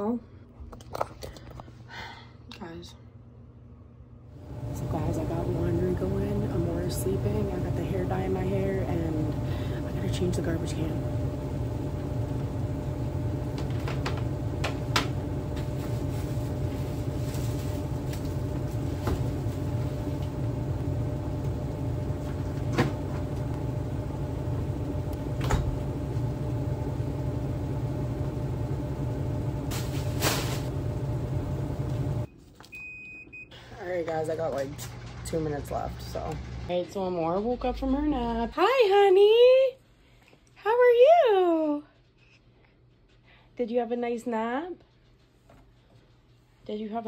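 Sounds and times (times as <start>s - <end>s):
laundry machine humming: 4.1s - 39.7s.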